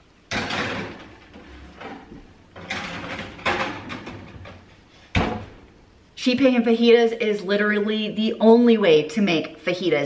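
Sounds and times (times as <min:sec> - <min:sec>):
sheet pans scraping on oven racks: 0:00.3 - 0:05.4.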